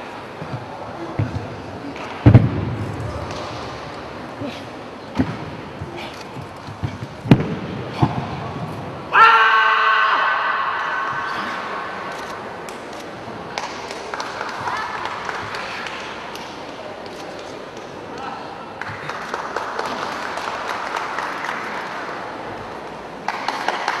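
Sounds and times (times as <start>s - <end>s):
murmur of voices: 0.0s - 9.2s, 10.2s - 24.0s.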